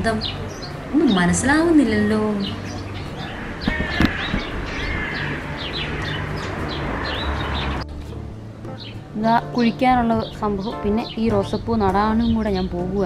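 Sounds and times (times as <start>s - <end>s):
outdoor background noise: 0.0s - 13.0s
small birds chirping: 0.0s - 13.0s.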